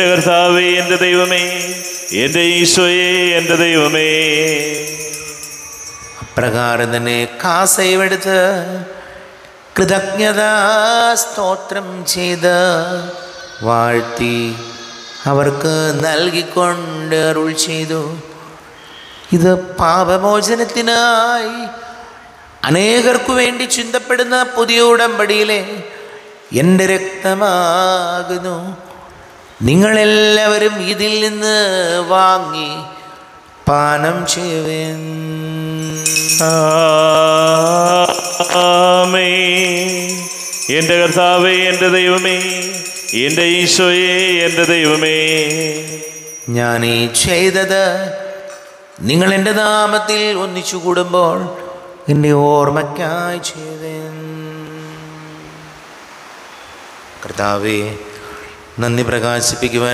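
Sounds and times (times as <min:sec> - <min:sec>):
man chanting into a microphone: 0:00.0 - 0:05.2, 0:06.2 - 0:18.6, 0:19.3 - 0:55.7, 0:57.2 - 0:59.9
small bells jingling: 0:00.0 - 0:08.3, 0:12.3 - 0:16.9, 0:32.0 - 0:49.5.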